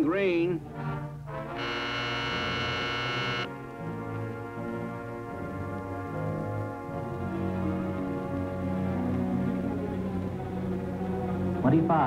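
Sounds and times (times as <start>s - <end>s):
signal horn tone: 1.6s - 3.5s.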